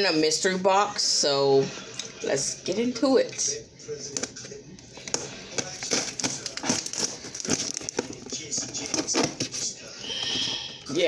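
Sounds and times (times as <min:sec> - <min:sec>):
scissors cutting packing tape: 0:05.1 - 0:09.6.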